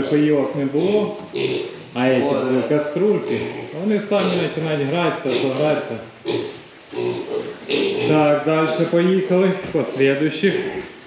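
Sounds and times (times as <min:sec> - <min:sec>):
piglets grunting: 0:00.0 - 0:09.0.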